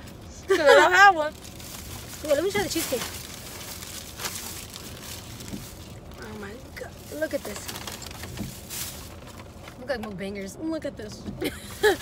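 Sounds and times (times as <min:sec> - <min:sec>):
car cabin hum: 0:00.0 - 0:12.0
food packaging rustling: 0:01.3 - 0:09.6.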